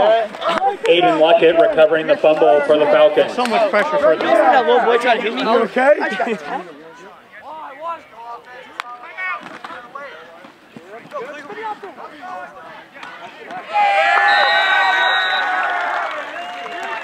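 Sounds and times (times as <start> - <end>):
crowd cheering: 11.4 - 17.0
spectators shouting: 12.4 - 17.0.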